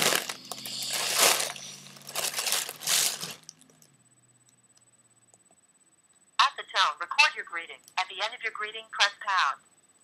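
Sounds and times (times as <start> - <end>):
foil balloon crinkling: 0.0 - 3.5.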